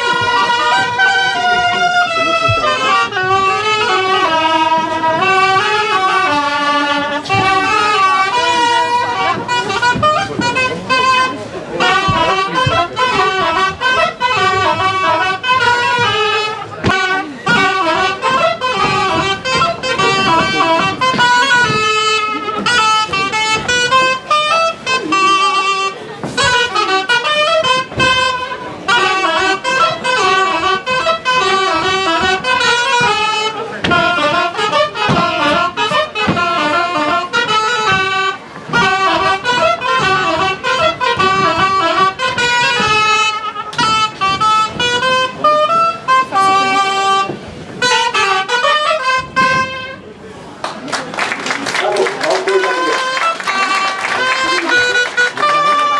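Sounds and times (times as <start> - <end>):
reedy wind instruments folk melody: 0.0 - 55.9
sharp percussion beats: 7.3 - 25.7.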